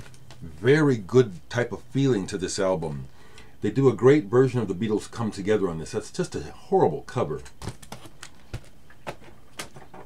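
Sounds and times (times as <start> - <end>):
record sleeves knocking and clicking: 0.0 - 0.5, 7.4 - 10.0.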